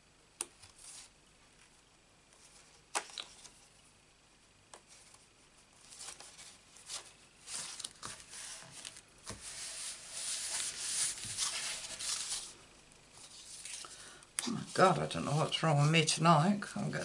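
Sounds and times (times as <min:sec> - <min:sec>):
card stock rustling and sliding: 0:05.9 - 0:12.5
paper scraping: 0:05.9 - 0:12.5
hands rubbing paper: 0:05.9 - 0:12.6.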